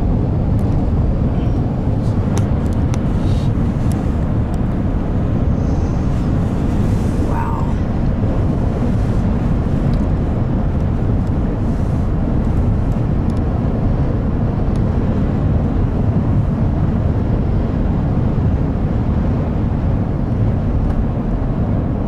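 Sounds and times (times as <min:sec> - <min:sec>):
car interior road and engine noise: 0:00.0 - 0:22.0.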